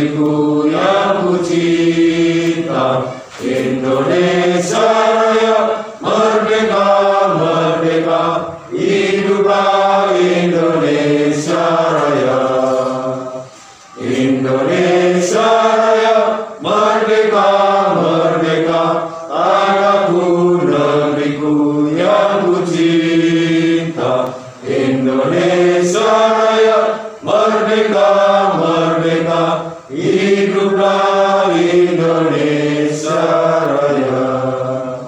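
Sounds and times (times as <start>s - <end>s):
group singing in unison: 0.0s - 35.0s.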